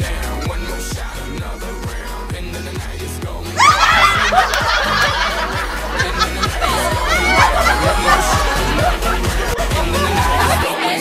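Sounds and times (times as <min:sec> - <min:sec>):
pop music with steady beat: 0:00.0 - 0:11.0
women laughing hard: 0:03.6 - 0:10.7.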